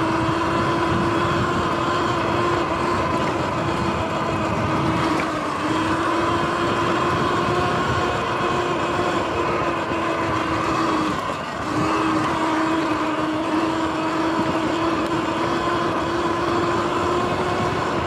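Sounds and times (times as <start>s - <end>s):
dirt bike riding rumble: 0.0s - 18.0s
electric motor whine: 0.0s - 18.0s.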